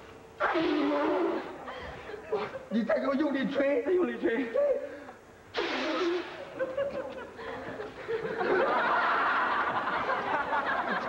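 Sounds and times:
audience laughter: 6.4s - 11.0s.

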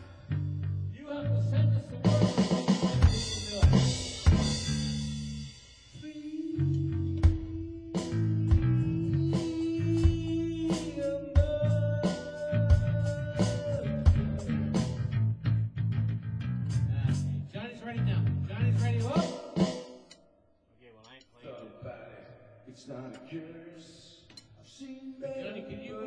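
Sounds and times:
rock band playing live: 2.0s - 5.5s, 7.4s - 17.2s.

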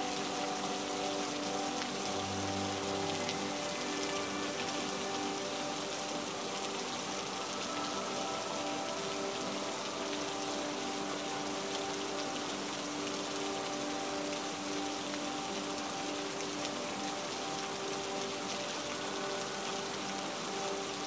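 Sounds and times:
steady rain falling: 0.0s - 21.0s.

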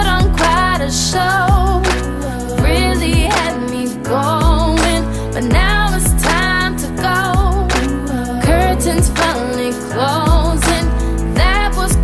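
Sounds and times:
deep booming bass drum: 0.0s - 0.7s, 1.5s - 1.9s, 2.6s - 3.5s, 4.4s - 4.8s, 5.5s - 6.6s, 7.4s - 7.8s, 8.4s - 9.2s, 10.3s - 10.8s, 11.4s - 12.0s
lead vocal with vibrato: 0.0s - 12.0s
steady bass: 0.0s - 12.0s.

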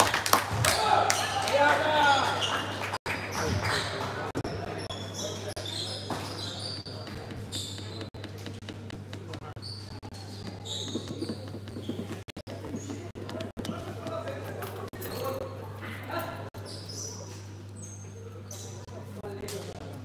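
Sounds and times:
high-pitched shoe squeaks: 4.4s - 15.4s, 16.6s - 18.8s
basketball bouncing: 5.6s - 14.6s
chatter of voices: 12.5s - 20.0s.

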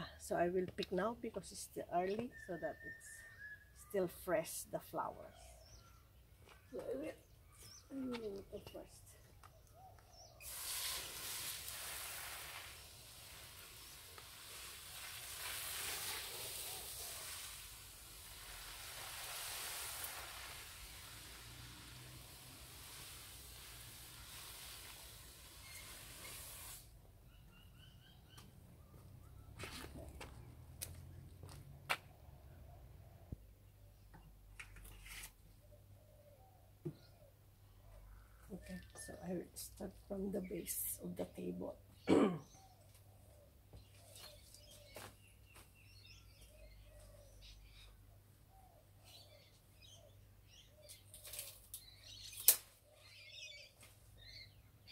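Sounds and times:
hose nozzle spraying water: 10.4s - 26.9s.

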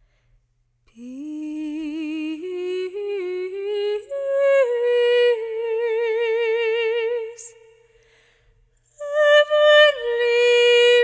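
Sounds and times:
woman singing wordless melody: 0.9s - 7.9s, 8.9s - 11.0s.

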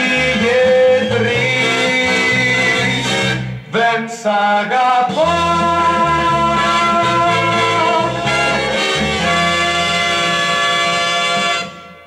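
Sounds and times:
pop song held chord: 0.0s - 12.0s.

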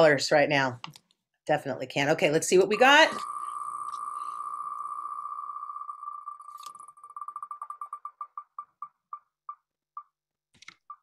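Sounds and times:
spinning wheel ticking: 2.7s - 9.6s.

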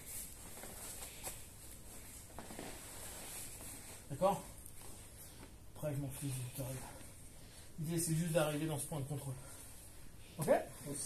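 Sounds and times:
cloth and bodies rustling on mats: 0.0s - 11.0s.

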